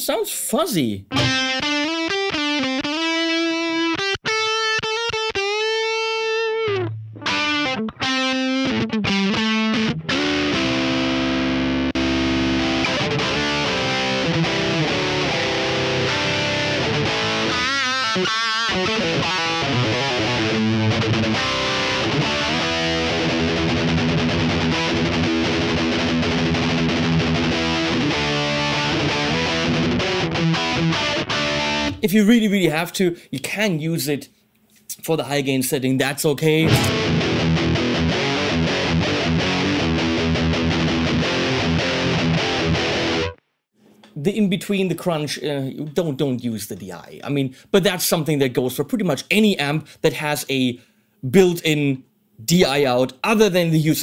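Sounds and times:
distorted electric guitar: 1.1s - 32.0s, 36.6s - 43.4s.

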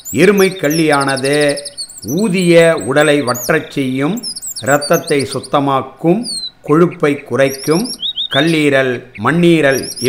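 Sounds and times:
bird trill: 0.0s - 10.0s
small birds chirping: 0.0s - 10.0s
man talking: 0.1s - 10.0s.

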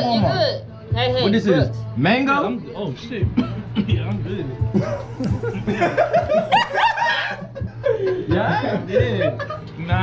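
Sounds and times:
men snickering and chuckling: 4.7s - 9.8s.

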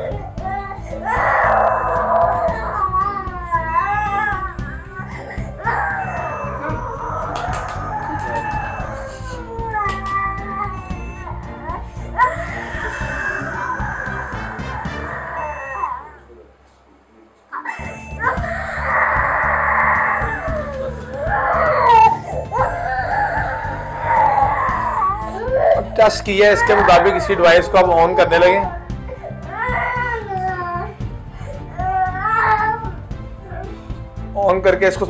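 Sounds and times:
toddler crying hard: 0.0s - 16.2s, 17.6s - 33.8s
background music: 0.0s - 16.4s, 17.7s - 35.0s.

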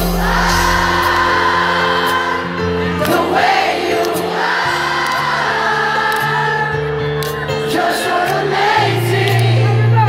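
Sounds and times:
crowd singing along: 0.0s - 10.0s.

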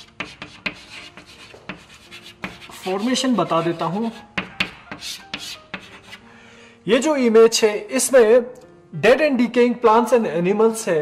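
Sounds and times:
chalk scratching on chalkboard: 0.0s - 6.2s.

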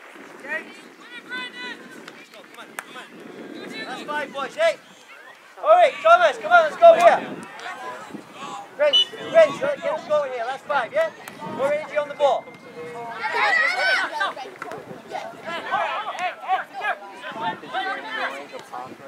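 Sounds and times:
voices calling out: 0.4s - 19.0s
high-pitched shout: 13.2s - 14.4s.

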